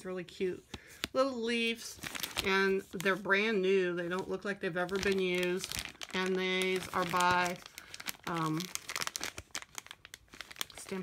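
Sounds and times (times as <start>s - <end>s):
plastic bag crinkling: 1.6s - 11.0s.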